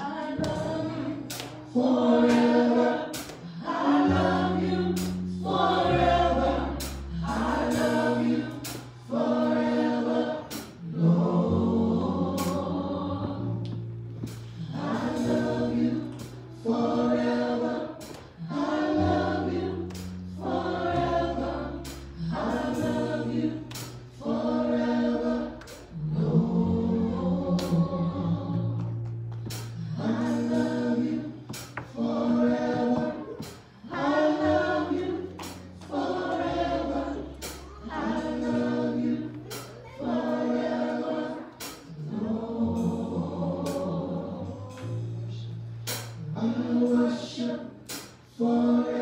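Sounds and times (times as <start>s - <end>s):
group singing praise chorus: 0.0s - 29.0s, 29.7s - 49.0s
electric bass guitar: 0.0s - 40.0s, 41.4s - 48.3s.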